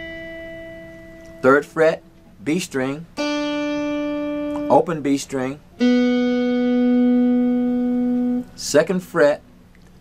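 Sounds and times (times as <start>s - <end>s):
electric guitar sustained note: 0.0s - 1.7s, 3.2s - 8.6s.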